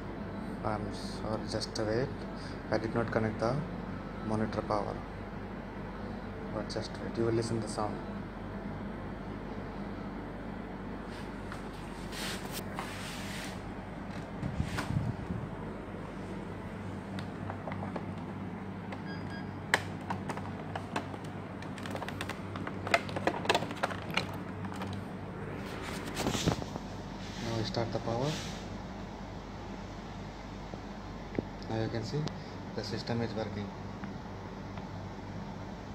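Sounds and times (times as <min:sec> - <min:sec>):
computer fan hum: 0:00.0 - 0:35.9
handling clicks and knocks: 0:19.7 - 0:25.0.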